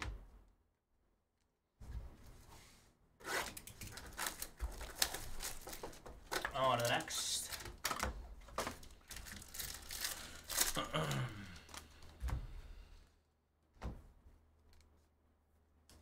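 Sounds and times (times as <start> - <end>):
foil pack crinkling and tearing: 3.5 - 12.1.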